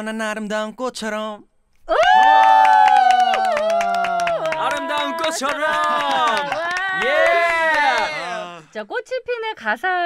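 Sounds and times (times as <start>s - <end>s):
people cheering and shouting: 1.9s - 8.7s
fast clapping: 2.2s - 8.4s.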